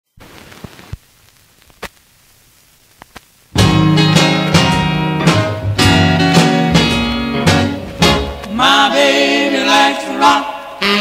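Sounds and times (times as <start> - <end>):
record hiss and crackle: 0.1 - 11.0
sharp record pops: 0.2 - 4.3.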